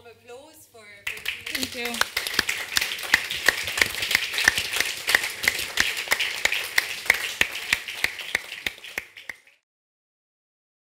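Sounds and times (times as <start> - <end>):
audience applauding: 1.1 - 9.6
close hands clapping: 1.1 - 9.6.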